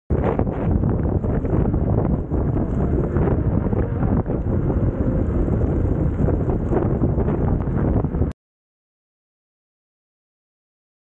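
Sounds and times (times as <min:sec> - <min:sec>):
gusty wind buffeting microphone: 0:00.1 - 0:08.4.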